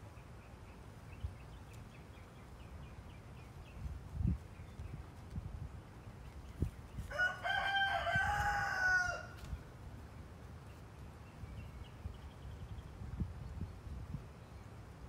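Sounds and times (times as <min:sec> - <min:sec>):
rooster crowing: 0:07.1 - 0:09.4.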